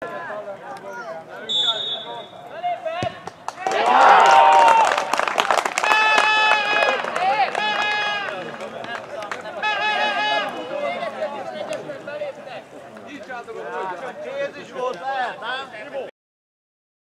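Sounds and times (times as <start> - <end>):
players shouting and yelling: 0.0 - 5.0, 5.8 - 16.1.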